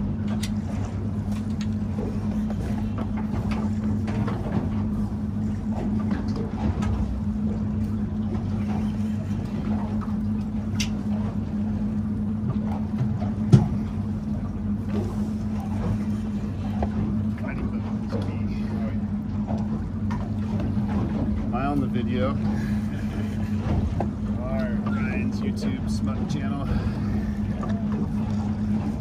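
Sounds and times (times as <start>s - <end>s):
boat motor idling: 0.0s - 29.0s.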